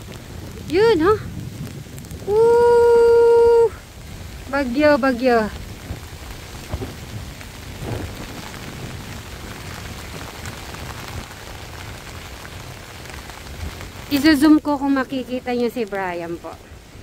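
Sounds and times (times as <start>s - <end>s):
heavy rain falling on water: 0.0s - 17.0s
low rumble: 0.0s - 17.0s.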